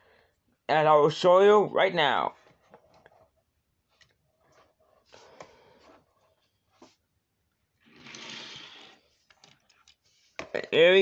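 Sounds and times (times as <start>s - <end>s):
toy cars scraping on plastic: 7.8s - 9.5s.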